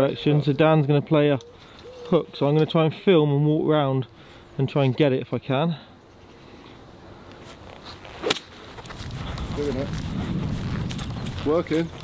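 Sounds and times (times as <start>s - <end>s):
footsteps on grass: 7.4s - 12.0s.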